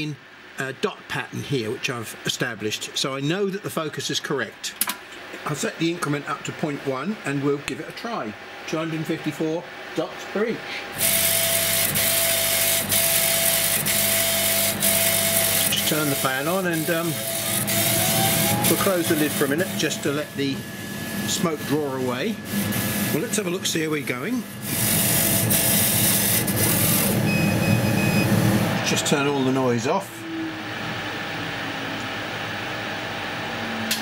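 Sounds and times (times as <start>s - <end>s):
steady hum and hiss: 0.0s - 34.0s
laser cutter motor whine: 10.4s - 34.0s.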